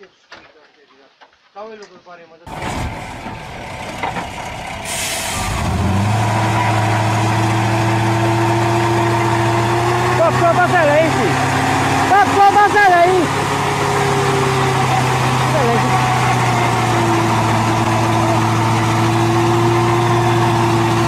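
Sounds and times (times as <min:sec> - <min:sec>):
truck diesel engine under load: 0:02.5 - 0:21.0
air hiss: 0:04.8 - 0:05.5.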